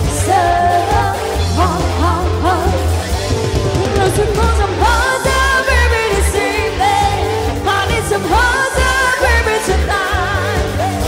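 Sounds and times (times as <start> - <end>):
drums: 0.0 - 11.0
electric guitar: 0.0 - 11.0
woman singing: 0.0 - 11.0.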